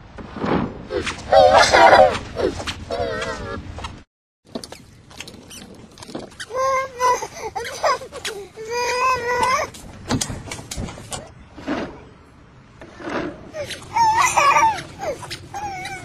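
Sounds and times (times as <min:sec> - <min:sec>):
toddler whining cries: 0:06.5 - 0:09.8, 0:13.5 - 0:16.0.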